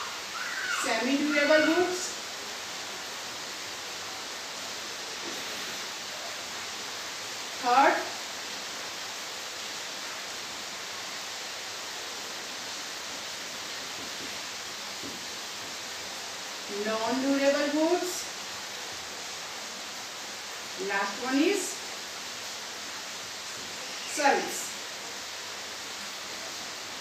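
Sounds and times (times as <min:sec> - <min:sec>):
steady background hiss: 0:00.0 - 0:27.0.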